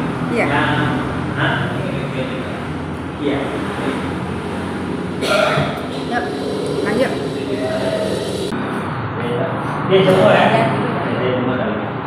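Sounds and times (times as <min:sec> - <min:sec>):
low background hum: 0:05.2 - 0:08.7
indistinct voices: 0:05.2 - 0:08.9.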